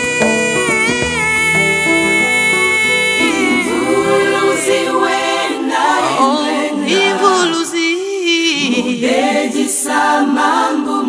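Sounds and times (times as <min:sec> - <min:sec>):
sustained instrumental notes: 0:00.0 - 0:07.2
women singing a hymn: 0:01.2 - 0:11.0.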